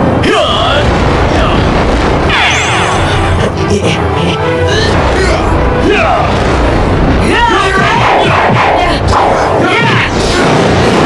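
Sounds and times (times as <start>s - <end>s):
voices shouting battle cries: 7.2s - 10.4s.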